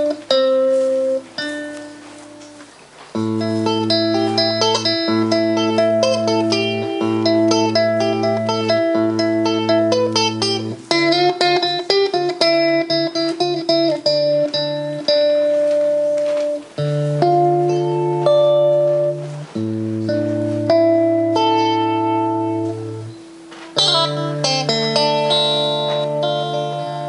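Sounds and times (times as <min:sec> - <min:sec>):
solo electric guitar: 0:00.0 - 0:27.0.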